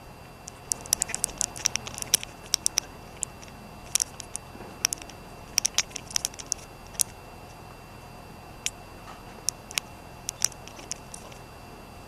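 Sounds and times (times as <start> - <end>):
faint room hum: 0.0 - 12.0
small sharp clicks: 0.4 - 7.2, 9.4 - 11.4.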